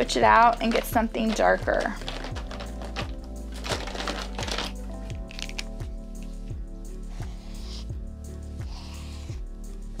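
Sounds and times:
marker pens clattering in plastic box: 0:00.0 - 0:05.7
background music with steady beat: 0:00.0 - 0:10.0.

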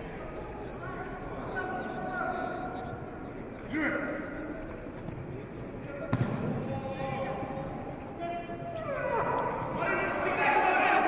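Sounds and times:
indistinct echoing voices: 0:00.0 - 0:11.0.

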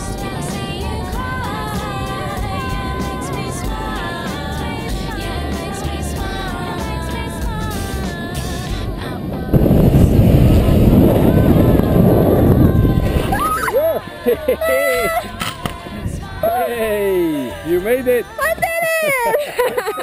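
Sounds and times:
wind buffeting microphone: 0:00.0 - 0:16.5
background music: 0:00.0 - 0:20.0
excited shouts: 0:13.3 - 0:15.4.

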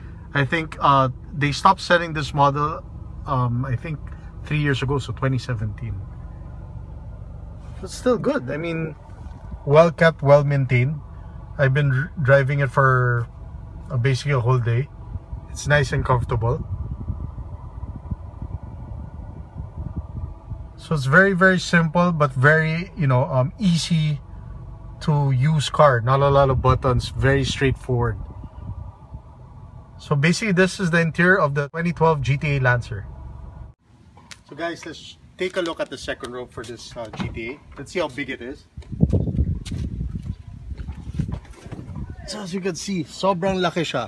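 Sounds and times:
car engine idling: 0:00.0 - 0:44.0
rumbling rustling and knocking: 0:38.7 - 0:42.3.

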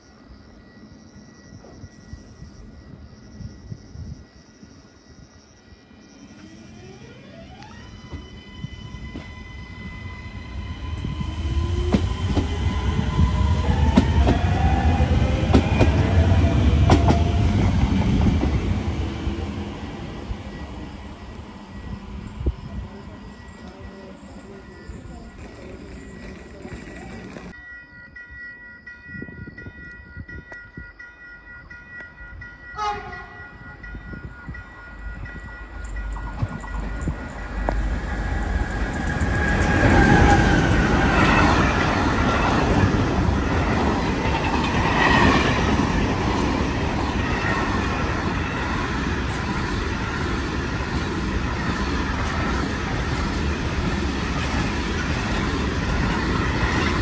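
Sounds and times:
freight train rumbling and clattering: 0:11.0 - 0:27.6, 0:32.9 - 0:57.0
train horn: 0:32.7 - 0:33.8.

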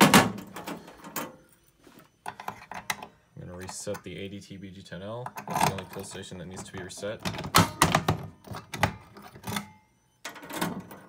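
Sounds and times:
mechanism clicks and thunks: 0:00.0 - 0:01.4, 0:05.2 - 0:11.0.

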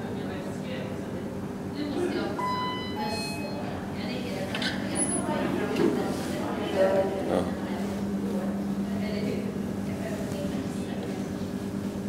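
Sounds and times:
lift arrival chime: 0:02.4 - 0:03.9.

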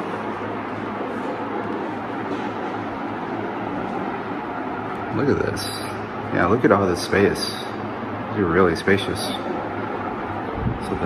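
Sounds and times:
low hum: 0:00.0 - 0:11.0
steady rushing noise: 0:00.0 - 0:11.0.

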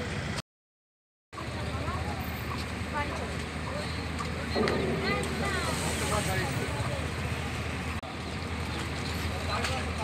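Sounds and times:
faint indistinct voices: 0:01.4 - 0:10.0.

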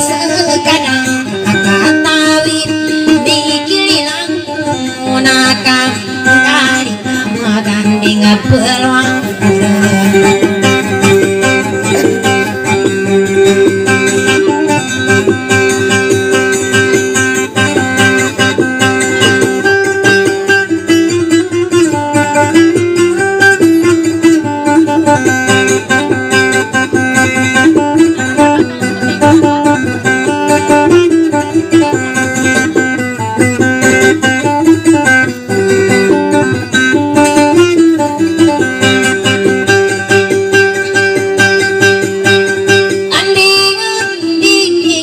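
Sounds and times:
acoustic guitar plucked melody: 0:00.0 - 0:45.0.

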